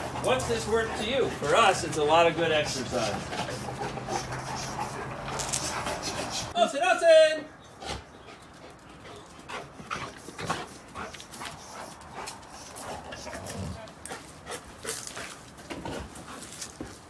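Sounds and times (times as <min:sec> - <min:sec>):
dog breathing hard: 0:00.0 - 0:06.6, 0:07.7 - 0:17.0.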